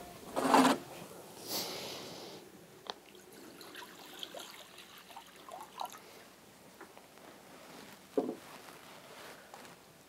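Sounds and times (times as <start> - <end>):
water pouring into a basin: 3.1 - 6.0.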